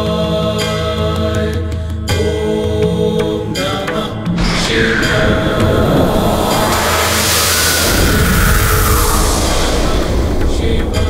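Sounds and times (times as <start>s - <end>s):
background music: 0.0s - 8.2s
low rumble: 3.8s - 11.0s
loud rushing whoosh: 3.9s - 11.0s.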